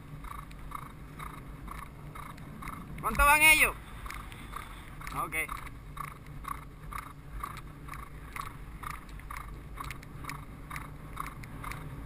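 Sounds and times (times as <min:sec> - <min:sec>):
horse hoofbeats on dirt: 0:00.0 - 0:12.0
low wind rumble: 0:00.0 - 0:12.0.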